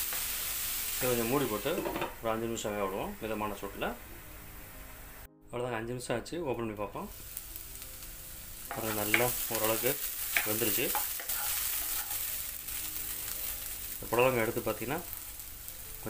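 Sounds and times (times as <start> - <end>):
vegetables sizzling in oil: 0.0 - 5.3, 7.1 - 16.0.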